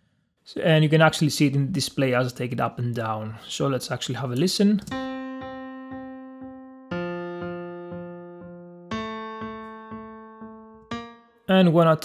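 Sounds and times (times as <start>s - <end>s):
repeated piano chord: 4.9s - 11.8s.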